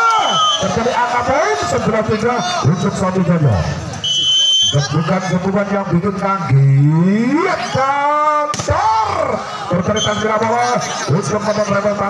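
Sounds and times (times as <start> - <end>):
man calling out: 6.5 - 12.0.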